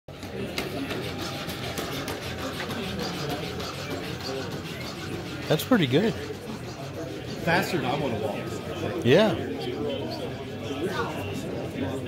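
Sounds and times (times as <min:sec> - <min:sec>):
indistinct chatter of many people: 0:00.1 - 0:12.0.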